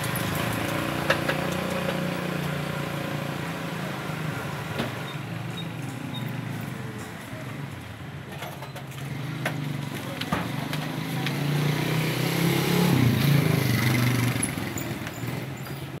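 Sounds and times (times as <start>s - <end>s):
sharp clicks and knocks: 0.0s - 2.6s.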